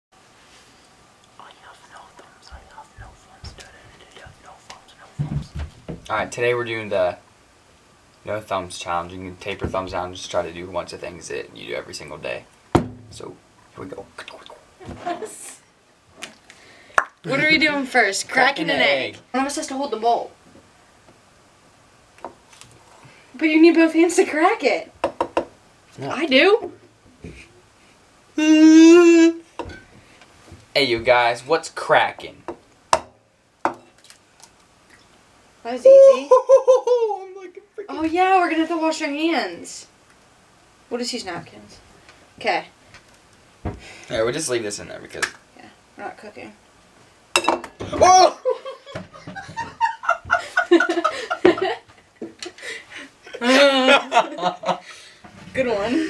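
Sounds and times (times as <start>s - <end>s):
quiet whispering: 0.8s - 5.6s
egg knocking against a bowl: 25.0s - 25.6s.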